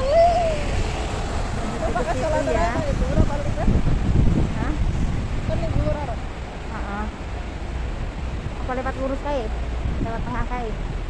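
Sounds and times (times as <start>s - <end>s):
bus driving past: 0.0s - 10.0s.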